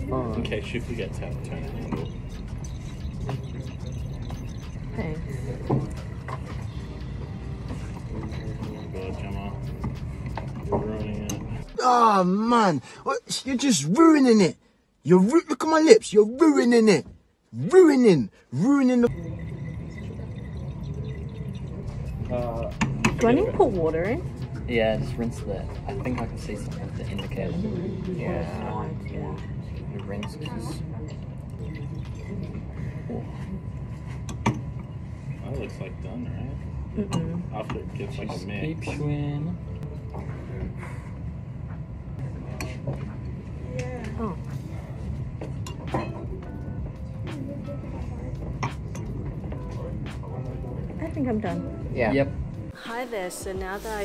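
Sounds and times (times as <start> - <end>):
steady low hum: 0.0 - 15.3, 16.0 - 54.0
liquid dripping into glass flask: 19.1 - 23.2.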